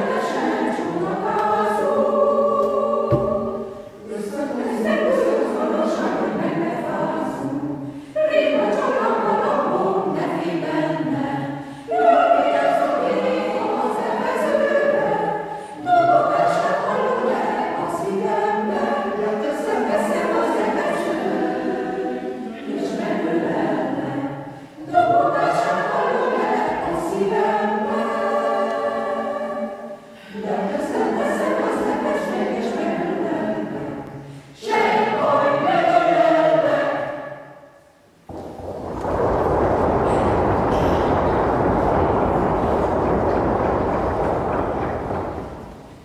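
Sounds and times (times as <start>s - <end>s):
mixed choir singing a cappella: 0.0s - 46.0s.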